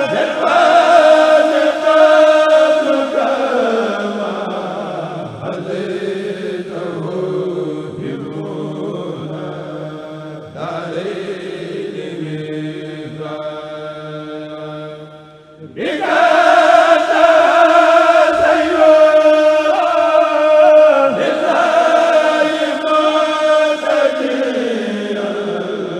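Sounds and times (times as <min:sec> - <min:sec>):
men chanting through loudspeaker: 0:00.0 - 0:25.9.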